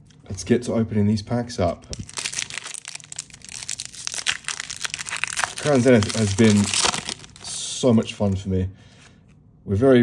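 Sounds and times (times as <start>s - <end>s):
foil wrapper being torn: 1.9s - 8.1s.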